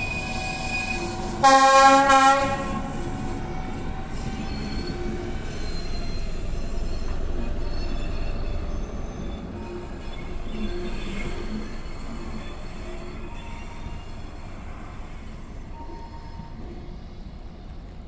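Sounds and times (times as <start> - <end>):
train rumbling along track: 0.0 - 18.0
train wheels squealing: 0.0 - 18.0.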